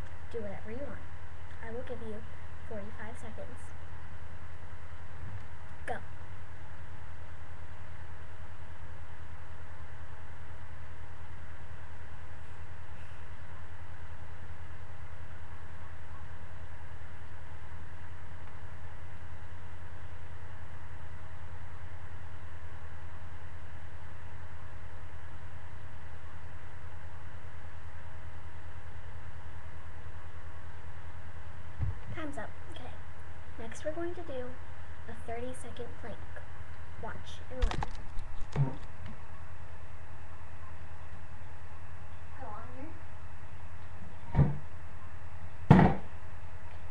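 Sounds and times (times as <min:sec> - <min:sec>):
faint thin whine: 0:00.0 - 0:46.9
steady low hum: 0:00.0 - 0:46.9.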